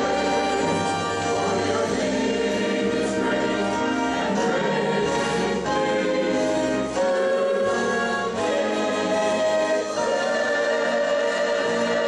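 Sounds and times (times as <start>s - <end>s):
church choir singing in harmony: 0.0s - 12.0s.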